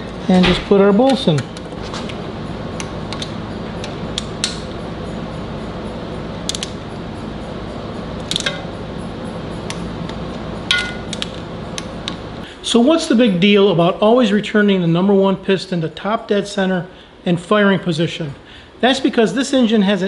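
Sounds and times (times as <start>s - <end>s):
steady background hiss: 0.0s - 20.0s.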